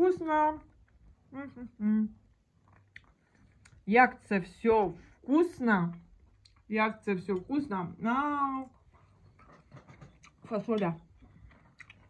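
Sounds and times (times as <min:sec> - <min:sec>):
person chewing food: 0:02.2 - 0:03.8, 0:08.8 - 0:12.0.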